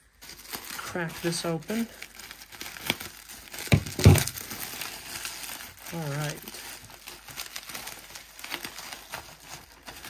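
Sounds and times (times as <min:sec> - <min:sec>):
bubble wrap crinkling and rustling: 0:00.0 - 0:10.0.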